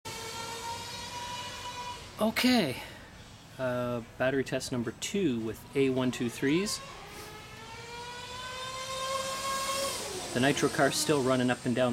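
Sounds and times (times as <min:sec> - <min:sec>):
small motor whining: 0:00.1 - 0:02.2, 0:06.3 - 0:11.9.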